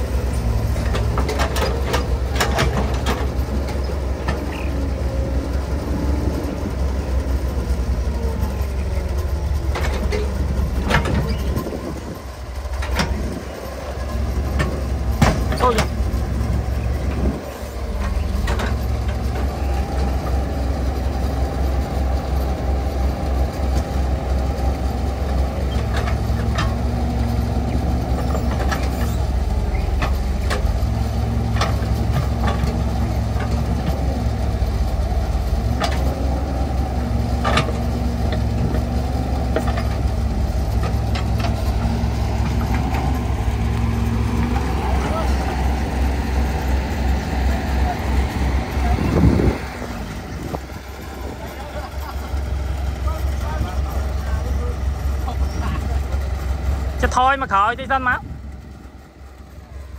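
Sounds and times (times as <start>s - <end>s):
excavator diesel engine running: 0.0s - 59.9s.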